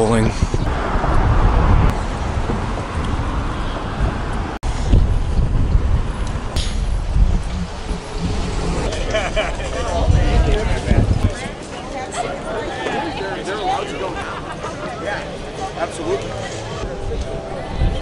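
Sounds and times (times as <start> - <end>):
cars passing on road: 0.0 - 11.8, 12.4 - 18.0.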